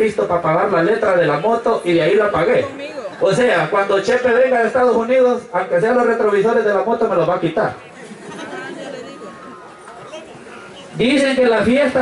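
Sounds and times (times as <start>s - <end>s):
large crowd chatter: 0.0s - 12.0s.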